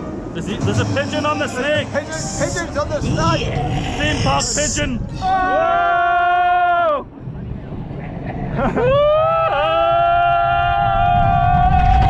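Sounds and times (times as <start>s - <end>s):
roller coaster running on track: 0.0s - 4.8s, 6.5s - 12.0s
wind rumble: 0.0s - 12.0s.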